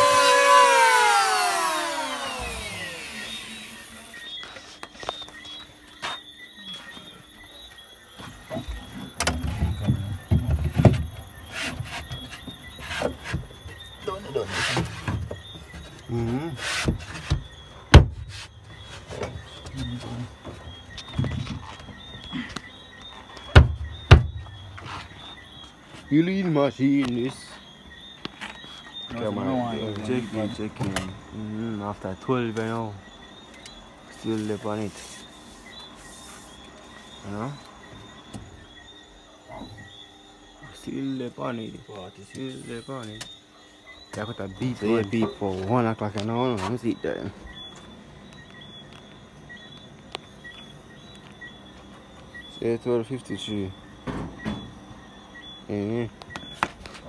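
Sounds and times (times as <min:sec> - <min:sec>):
fist thumping plywood board: 0:16.9 - 0:18.3, 0:23.6 - 0:24.5.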